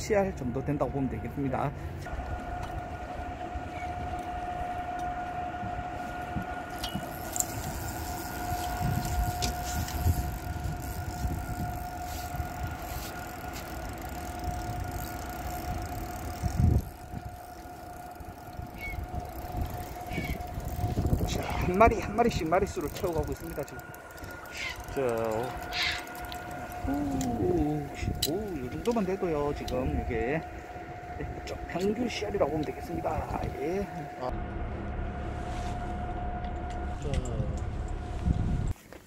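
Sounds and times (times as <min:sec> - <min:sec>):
boat machinery whine and rumble: 0:00.0 - 0:39.0.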